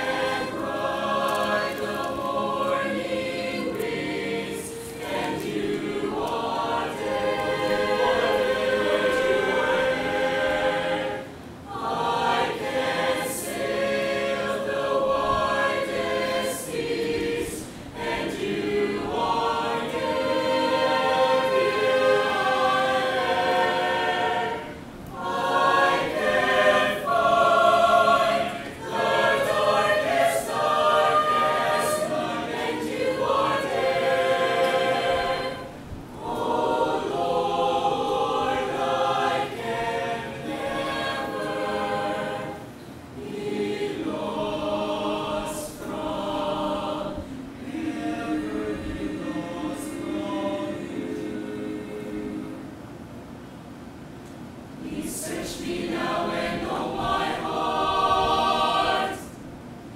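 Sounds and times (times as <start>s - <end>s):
mixed choir singing: 0.0s - 53.1s, 54.5s - 59.6s.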